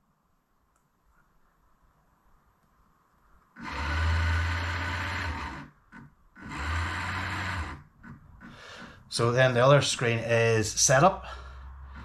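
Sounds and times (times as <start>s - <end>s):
electric motor whirring drone: 3.6s - 5.7s, 6.4s - 7.8s.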